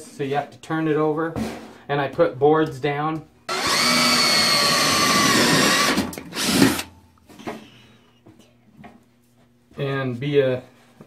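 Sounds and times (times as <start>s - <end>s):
drill boring through sheet metal: 3.5s - 6.9s.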